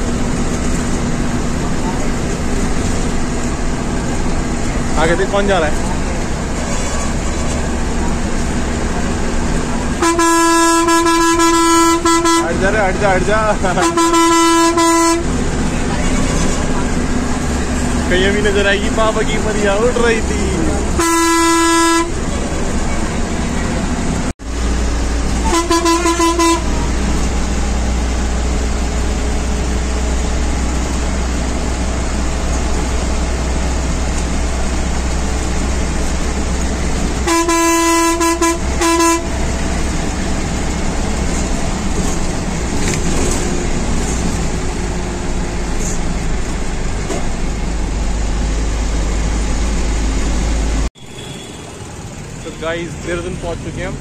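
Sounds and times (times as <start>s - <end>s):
bus engine rumble: 0.0s - 54.0s
road noise: 0.0s - 54.0s
vehicle horn honking: 10.0s - 12.6s, 13.8s - 15.3s, 21.0s - 22.3s, 25.4s - 26.9s, 37.2s - 39.5s, 51.0s - 52.7s.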